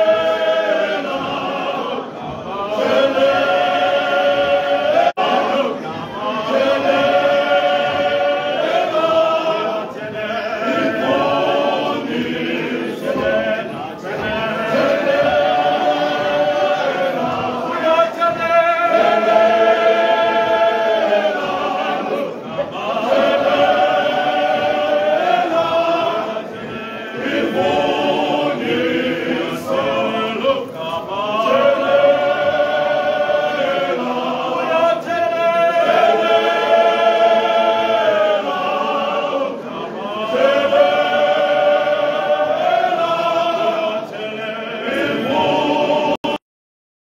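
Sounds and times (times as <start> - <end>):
male choir singing in harmony: 0.0 - 46.4.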